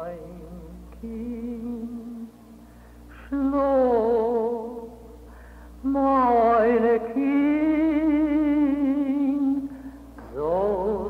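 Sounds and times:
woman singing a lullaby: 0.0 - 2.4, 3.1 - 5.0, 5.8 - 11.0.

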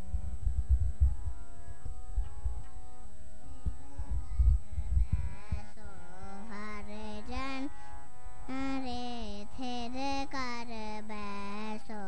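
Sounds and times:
microphones being handled: 0.0 - 2.8
steady hum of held tones: 0.0 - 12.0.

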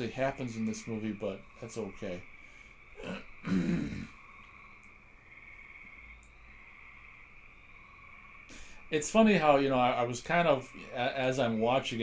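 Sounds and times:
man clearing his throat: 3.0 - 4.1.

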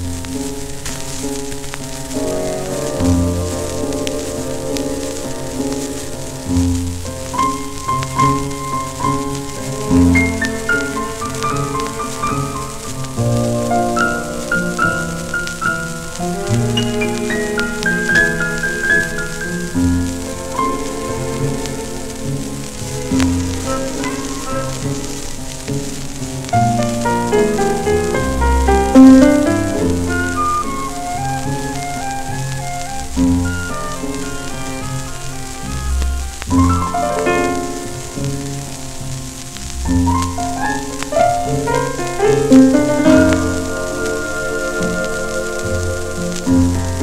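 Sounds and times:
music from a record: 0.0 - 47.0
record surface hiss and crackle: 0.0 - 47.0.

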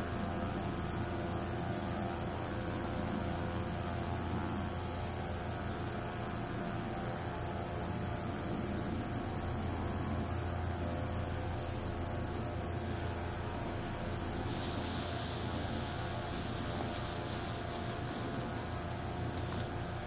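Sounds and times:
insects trilling: 0.0 - 20.0
pulsing insect call: 0.0 - 20.0.

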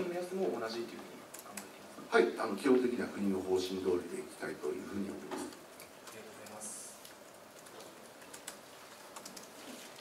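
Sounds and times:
computer keyboard typing clicks: 7.6 - 9.6.

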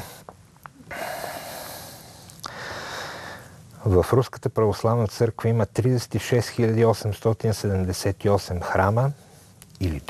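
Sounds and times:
man breathing in through nose: 0.9 - 3.6.

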